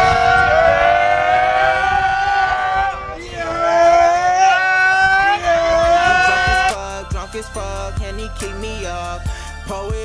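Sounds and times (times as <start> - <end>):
voices holding sliding notes: 0.0 - 7.0.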